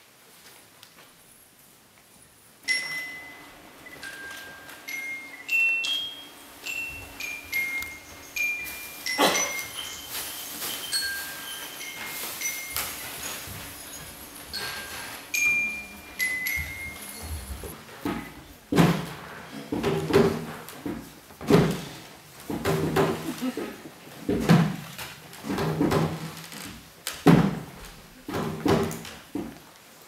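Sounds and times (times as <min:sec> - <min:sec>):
high bell-like chime notes: 0:02.7 - 0:17.6.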